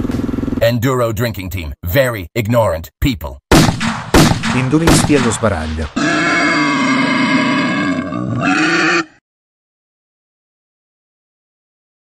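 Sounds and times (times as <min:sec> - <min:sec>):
animal-like roar: 0:06.0 - 0:09.2.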